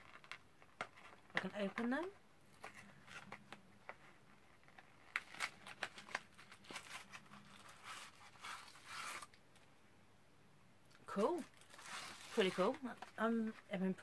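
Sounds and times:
card and packaging rustling: 0.0s - 9.7s, 11.1s - 14.0s.

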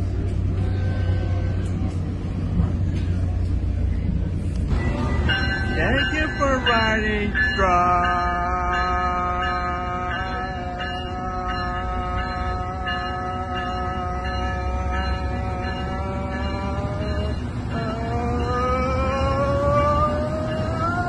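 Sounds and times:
train whine over low rumble: 0.0s - 21.0s.

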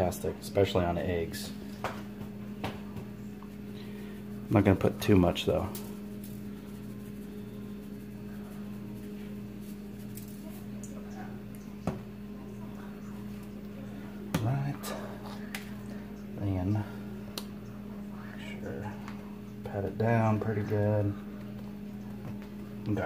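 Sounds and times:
steady electrical hum: 0.0s - 23.0s.

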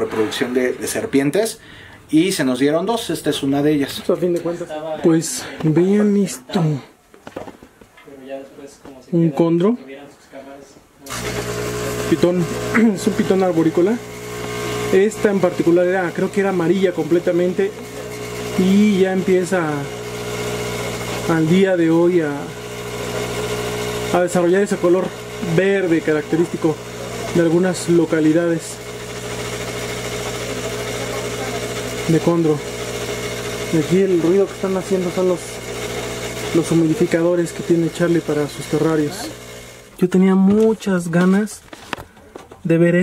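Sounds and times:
humidifier hissing: 11.0s - 40.2s.

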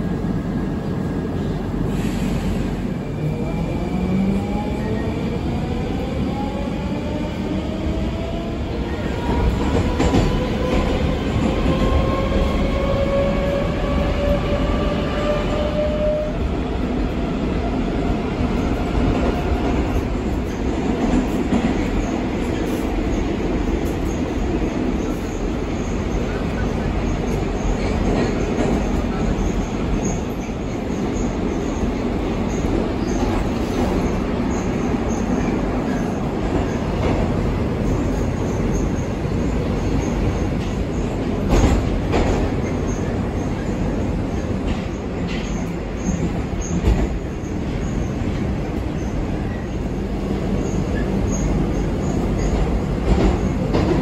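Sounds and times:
train wheels on rails: 0.0s - 54.0s.

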